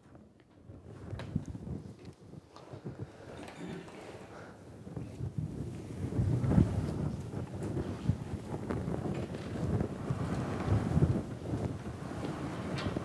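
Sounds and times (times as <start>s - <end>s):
rumbling and rustling on microphone: 0.0s - 13.0s.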